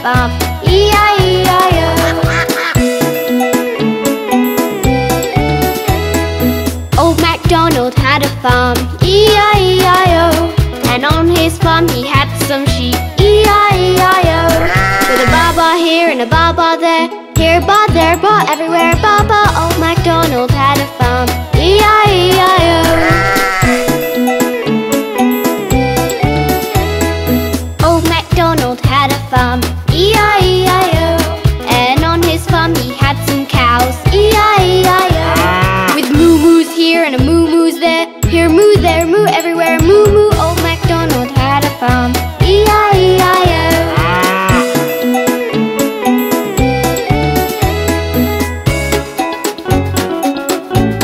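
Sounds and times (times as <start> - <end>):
children's song music with bass beat: 0.0 - 51.0
sheep bleating: 2.0 - 2.8, 14.4 - 15.6, 22.8 - 24.1, 35.1 - 36.1, 43.6 - 44.8
cartoon cow mooing: 14.4 - 15.6, 22.7 - 24.1, 35.1 - 36.1, 43.6 - 44.8.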